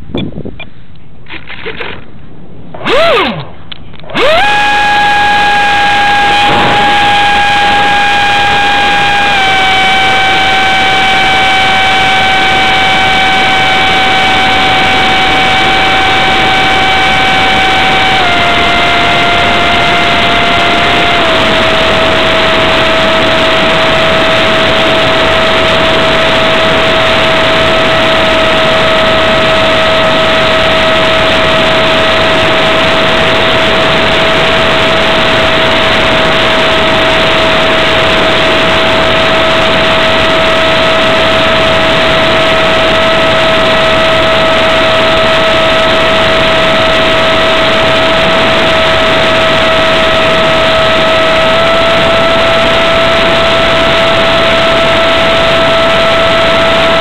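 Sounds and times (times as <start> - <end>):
electric ducted fan whine: 0.0 - 57.0
loud rushing air noise: 5.3 - 57.0.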